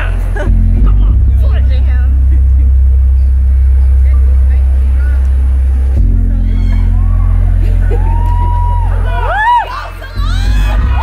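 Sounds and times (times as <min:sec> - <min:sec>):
deep bass: 0:00.0 - 0:11.0.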